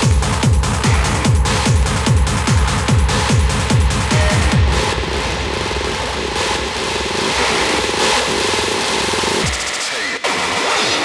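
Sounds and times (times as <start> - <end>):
pulsing bass: 0.0 - 10.6
trance synth texture: 0.0 - 11.0.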